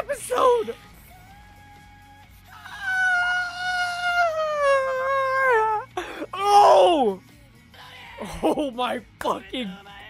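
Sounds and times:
man's high-pitched wailing scream: 2.5 - 7.2.

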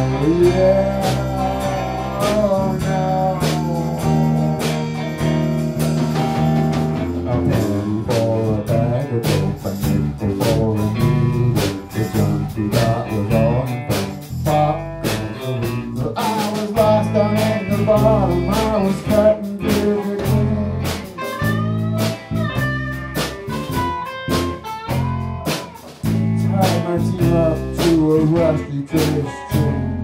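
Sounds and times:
bass guitar: 0.0 - 30.0
drum kit steady beat: 0.0 - 30.0
electric guitar lead: 0.0 - 30.0.

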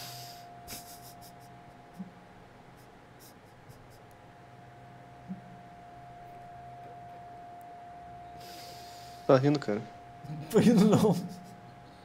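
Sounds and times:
faint high hum: 0.0 - 12.0.

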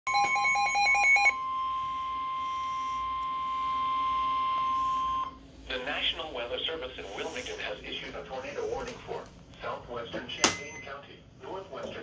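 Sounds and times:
steady warning alarm tone: 0.1 - 5.7.

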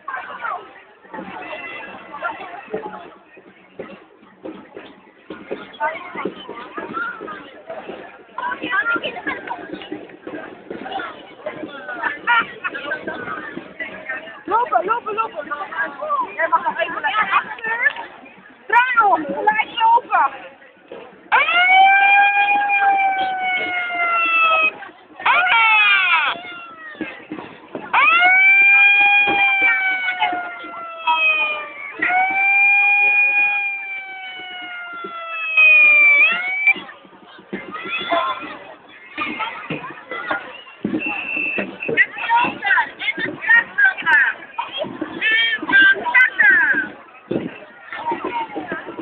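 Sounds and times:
crowd noise: 0.0 - 49.0.

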